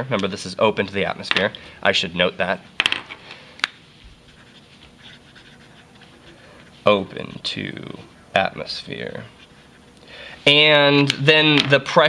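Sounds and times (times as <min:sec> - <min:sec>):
marker writing on paper: 0:04.0 - 0:07.5.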